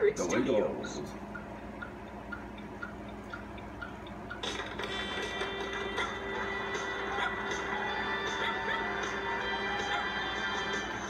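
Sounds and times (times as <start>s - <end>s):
music through tv speaker: 0.0s - 11.0s.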